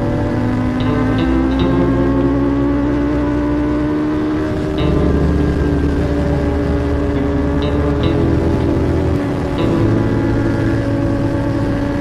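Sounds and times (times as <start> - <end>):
ambient music: 0.0 - 12.0
motorcycle engine at high speed: 0.0 - 12.0
wind noise: 0.0 - 12.0.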